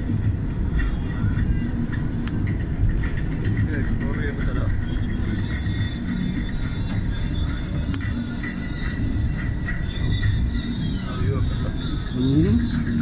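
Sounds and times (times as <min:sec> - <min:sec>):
car road and engine rumble: 0:00.0 - 0:13.0.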